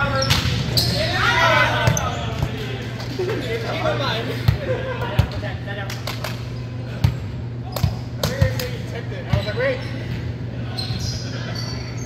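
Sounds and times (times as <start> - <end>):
volleyballs hit and bouncing: 7.0 - 9.4.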